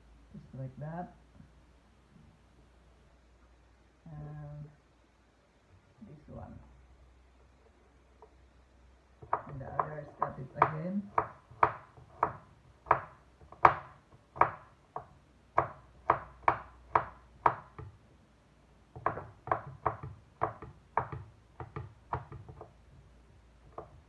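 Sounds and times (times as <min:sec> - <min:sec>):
knife chopping on wooden board: 0:09.2 - 0:17.9, 0:19.0 - 0:22.7.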